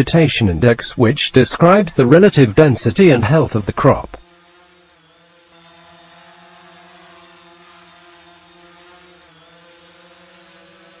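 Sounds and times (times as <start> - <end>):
drone propellers humming: 1.6 - 11.0.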